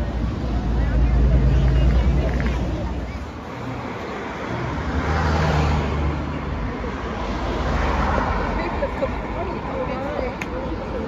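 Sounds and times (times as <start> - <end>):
cars passing: 0.0 - 11.0.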